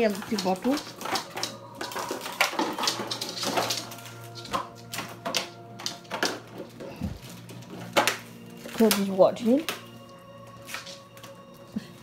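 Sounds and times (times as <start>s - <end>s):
background music: 0.0s - 12.0s
dog chewing plastic bottle: 0.0s - 12.0s.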